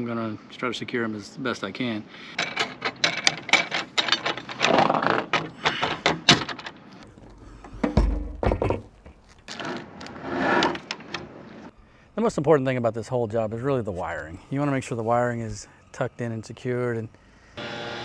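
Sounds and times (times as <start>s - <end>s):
metal hardware clinking: 2.4s - 4.7s.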